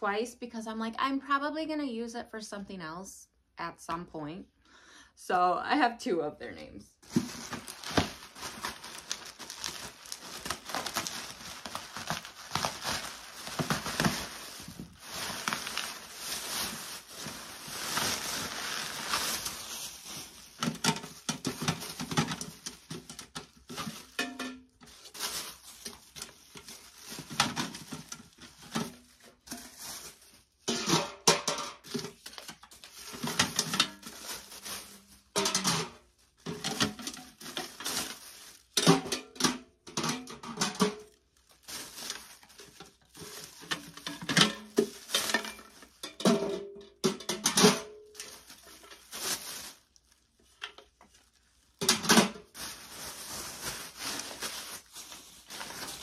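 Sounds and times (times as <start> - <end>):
plastic wrapping crinkling: 7.0 - 30.8, 31.8 - 56.0
metal pails clanking: 20.6 - 24.6, 30.7 - 32.2, 35.3 - 37.8, 38.8 - 41.0, 43.7 - 47.9.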